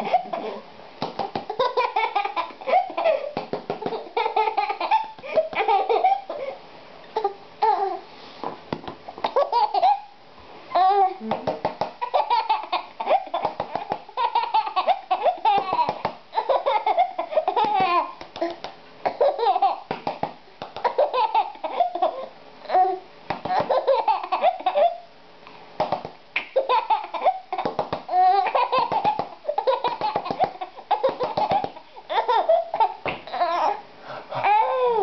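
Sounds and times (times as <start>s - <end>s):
baby laughing: 0.0s - 0.6s, 1.2s - 6.6s, 7.2s - 8.0s, 9.2s - 10.1s, 12.0s - 20.0s, 20.7s - 25.1s, 26.4s - 35.0s.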